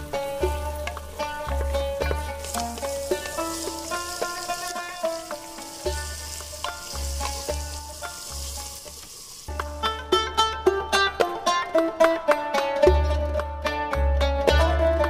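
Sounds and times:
meat sizzling in a pot: 0.0s - 10.4s
plucked-note background music: 0.0s - 15.0s
wooden spoon stirring: 0.3s - 9.6s.

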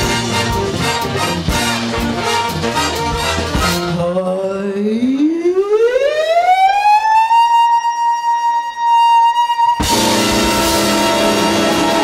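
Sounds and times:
big band playing: 0.0s - 4.3s, 9.8s - 12.0s.

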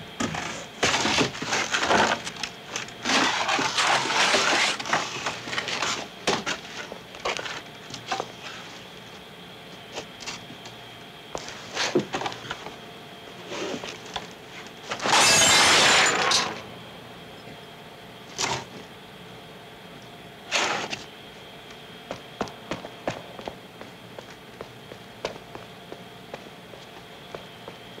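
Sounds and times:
cardboard and wood being smashed: 14.9s - 16.6s.

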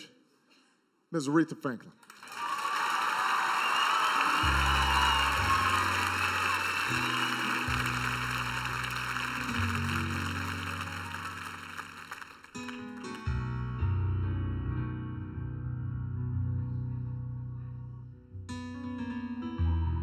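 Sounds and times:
audience applauding and cheering: 2.0s - 13.4s
band playing low chords: 4.4s - 11.8s, 13.1s - 20.0s.

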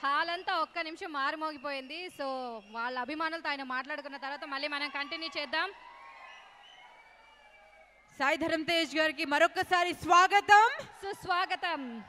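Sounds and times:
audience whistling: 0.6s - 3.4s, 6.2s - 8.5s.

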